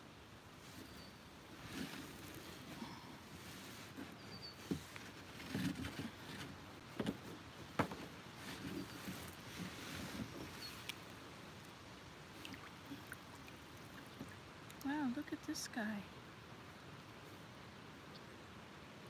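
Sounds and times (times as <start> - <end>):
plastic kayak bumping and rubbing: 3.8 - 10.7.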